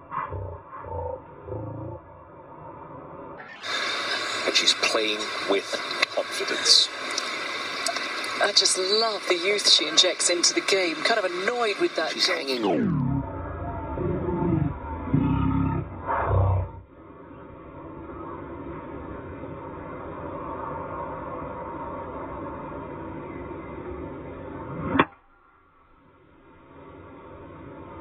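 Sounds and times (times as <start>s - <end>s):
outdoor ambience: 0.0s - 28.0s
crowd cheering and roaring: 12.5s - 16.0s.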